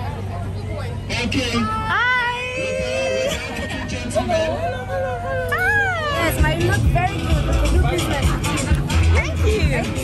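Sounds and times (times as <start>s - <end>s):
crowd chatter: 0.0s - 10.0s
background music: 5.7s - 10.0s.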